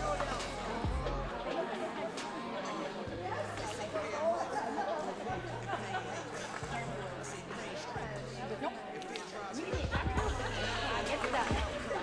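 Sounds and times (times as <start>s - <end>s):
overlapping chatter of people: 0.0s - 12.0s.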